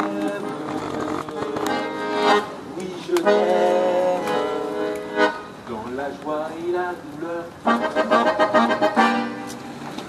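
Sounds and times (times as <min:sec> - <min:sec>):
piano accordion chords: 0:00.0 - 0:05.6, 0:07.6 - 0:10.0.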